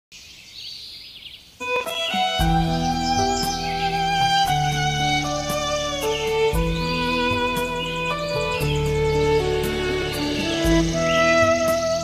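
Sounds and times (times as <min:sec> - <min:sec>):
small birds chirping: 0:00.1 - 0:12.0
music with held notes: 0:01.6 - 0:12.0.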